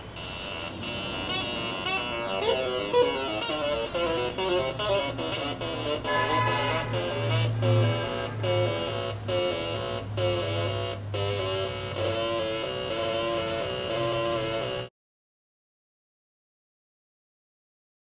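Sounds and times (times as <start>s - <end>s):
buzzy synth tones: 0.0s - 14.9s.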